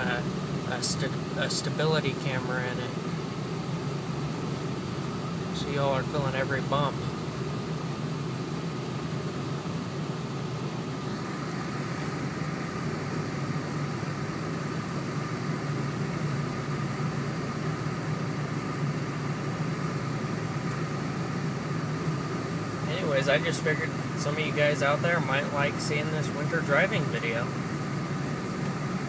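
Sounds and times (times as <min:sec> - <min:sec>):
truck engine and tyre noise: 0:00.0 - 0:29.0.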